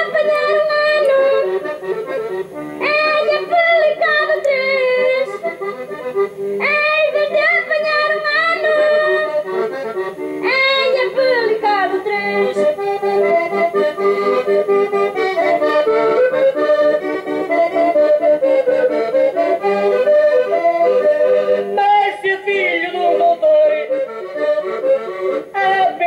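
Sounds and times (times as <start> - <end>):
person singing: 0.0 - 6.0, 6.6 - 26.0
accordion playing folk tune: 0.0 - 26.0.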